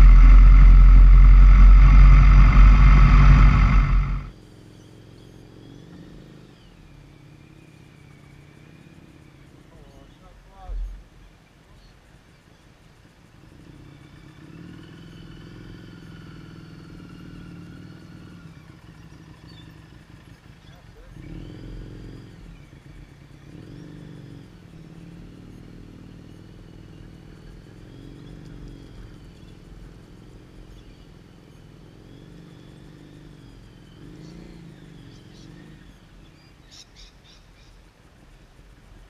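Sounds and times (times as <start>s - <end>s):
motorcycle engine at low revs: 0.0s - 10.0s, 12.2s - 38.0s.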